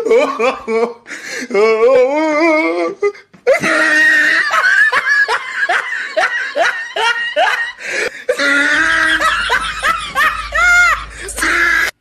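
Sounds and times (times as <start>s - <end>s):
low hum: 8.6s - 12.0s.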